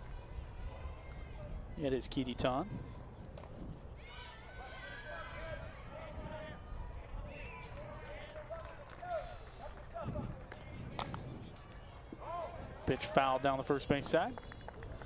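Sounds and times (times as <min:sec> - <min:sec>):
distant girls calling and cheering: 0:00.0 - 0:01.8, 0:02.5 - 0:15.0.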